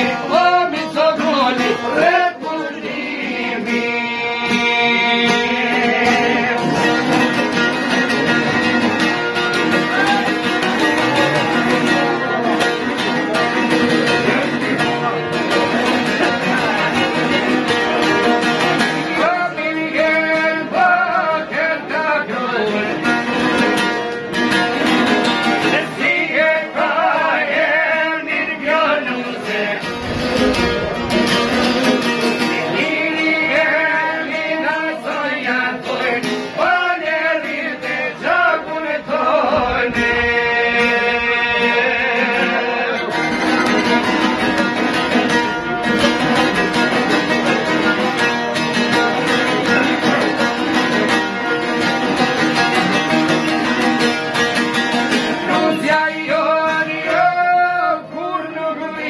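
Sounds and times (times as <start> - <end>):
person singing folk song: 0.0 - 59.0
plucked strings: 0.0 - 59.0.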